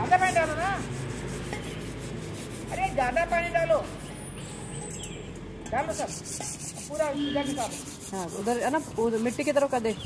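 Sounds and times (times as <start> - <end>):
scrubbing on stone paving: 0.0 - 4.3, 5.8 - 10.0.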